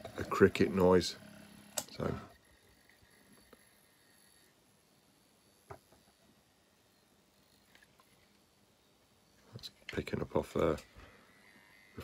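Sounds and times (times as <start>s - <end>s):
faint high buzzer tone: 0.0s - 9.6s, 10.2s - 12.0s.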